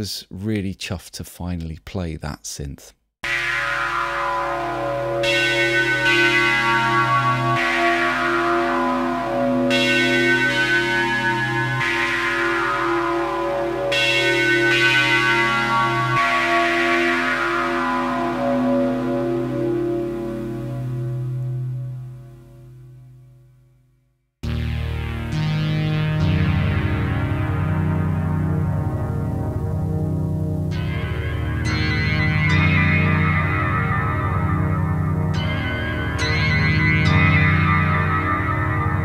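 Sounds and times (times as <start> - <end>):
synthesizer sustained chords: 3.2 - 23.5, 24.4 - 39.0.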